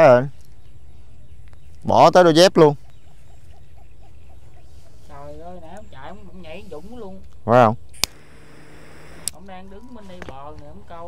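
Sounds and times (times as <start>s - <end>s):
low steady background noise: 0.0s - 11.0s.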